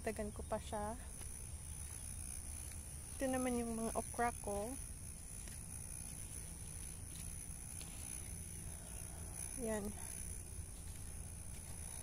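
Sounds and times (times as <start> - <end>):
steady low rumble: 0.0 - 12.0
faint ticks: 5.4 - 12.0.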